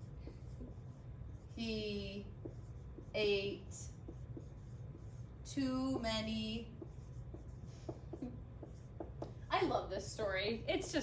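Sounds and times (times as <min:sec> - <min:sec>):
marker writing on whiteboard: 0:00.0 - 0:09.8
low room hum: 0:00.0 - 0:11.0.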